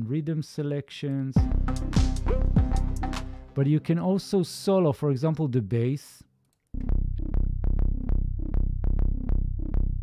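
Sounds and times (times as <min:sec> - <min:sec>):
arpeggiated synth bass line: 0:01.4 - 0:03.5, 0:06.8 - 0:10.0.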